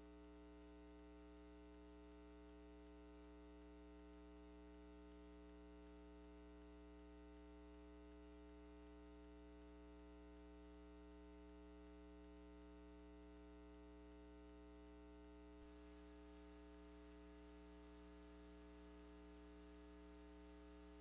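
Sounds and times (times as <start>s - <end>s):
faint mains hum: 0.0s - 21.0s.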